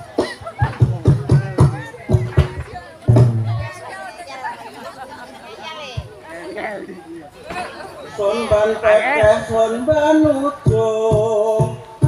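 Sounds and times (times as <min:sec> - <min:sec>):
voices talking over one another: 0:00.0 - 0:12.0
low drum stroke: 0:00.2 - 0:03.7.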